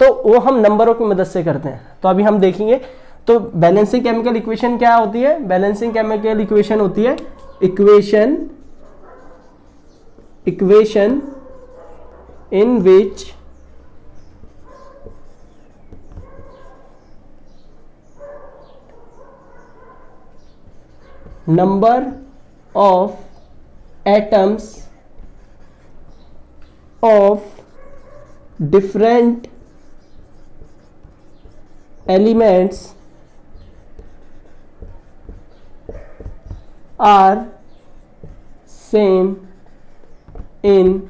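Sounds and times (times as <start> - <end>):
marker squeaking on whiteboard: 3.9 - 41.0
light scratches: 8.3 - 12.5, 13.1 - 40.6.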